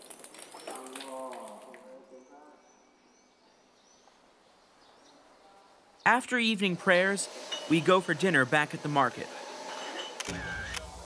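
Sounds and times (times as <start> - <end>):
man's voice: 0.6 - 2.8, 6.1 - 9.3.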